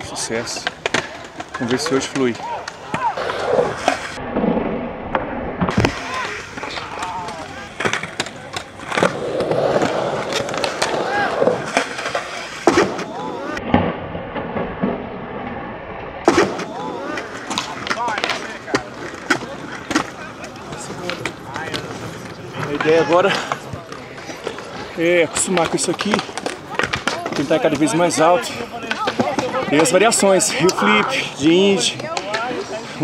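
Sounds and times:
skateboard rolling on concrete: 0.0s - 33.0s
skateboard deck clacks and slaps: 0.4s - 4.2s, 5.7s - 13.6s, 16.3s - 30.8s.

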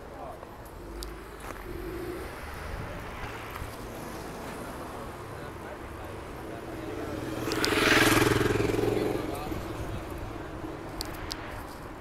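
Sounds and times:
vehicle passing by: 0.7s - 11.7s.

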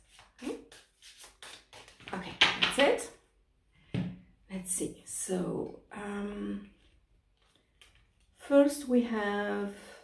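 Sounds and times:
cards being shuffled: 0.0s - 2.9s.

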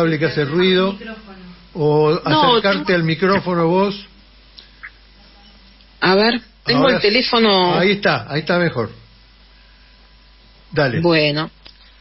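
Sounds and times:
faint line hum and hiss: 0.0s - 12.0s.

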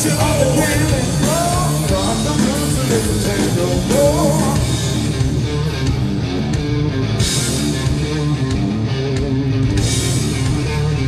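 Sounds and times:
blues-rock trio playing: 0.0s - 11.0s.

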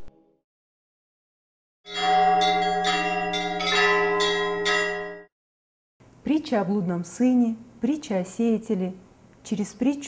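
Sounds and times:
church bell strikes: 1.9s - 5.3s
deep held bell tone: 1.9s - 5.3s.

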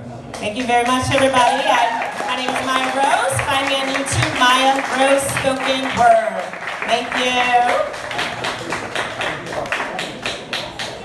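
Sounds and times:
audience clapping: 0.3s - 11.0s.

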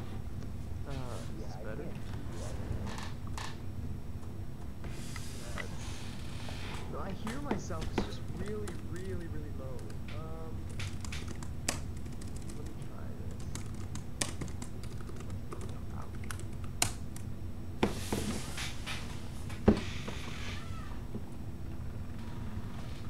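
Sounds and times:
steady low hum: 0.0s - 23.0s.

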